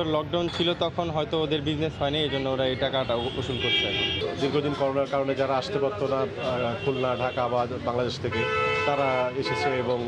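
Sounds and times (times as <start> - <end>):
man talking: 0.0 - 10.0
vehicle horn honk: 8.3 - 10.0.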